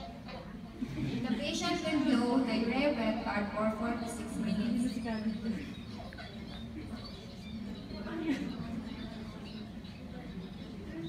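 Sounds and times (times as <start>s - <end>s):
indistinct low voices: 0.0s - 11.0s
room noise in a hall: 0.0s - 11.0s.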